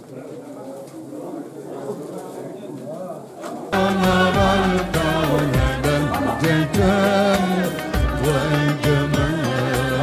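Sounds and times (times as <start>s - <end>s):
crowd murmur: 0.0s - 10.0s
loud music with singing: 3.8s - 10.0s.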